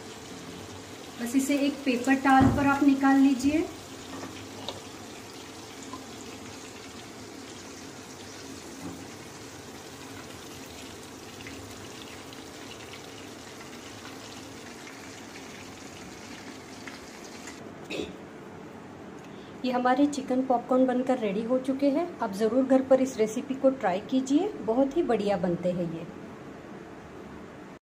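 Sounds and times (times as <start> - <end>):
hot oil sizzling: 0.0 - 17.6.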